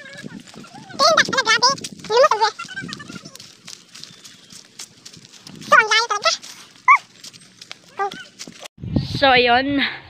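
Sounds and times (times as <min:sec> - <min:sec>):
dog yelping: 0:05.7 - 0:07.2, 0:07.8 - 0:08.5
dog barking: 0:06.9 - 0:07.1.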